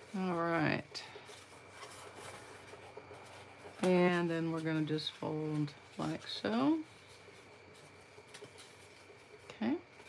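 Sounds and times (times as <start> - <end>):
cardstock rustling and tapping: 0.0 - 9.4.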